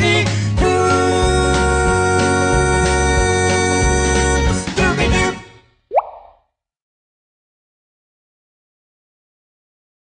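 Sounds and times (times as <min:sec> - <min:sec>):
cartoon plop rising in pitch: 0:05.9 - 0:06.4.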